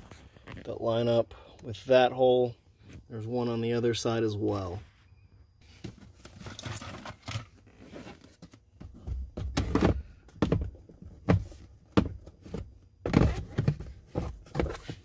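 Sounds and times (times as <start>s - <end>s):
plastic rubbing and scraping: 5.6s - 15.0s.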